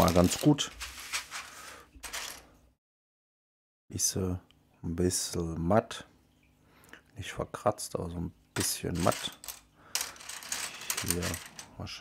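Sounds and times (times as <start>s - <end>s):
plastic bricks clicking and rustling: 0.0s - 2.4s, 8.6s - 11.8s.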